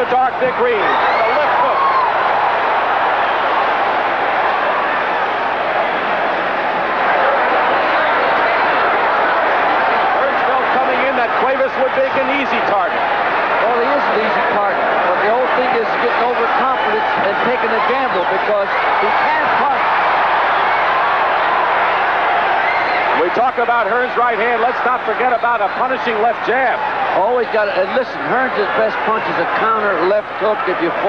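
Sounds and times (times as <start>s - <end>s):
crowd shouting and cheering: 0.0s - 31.0s.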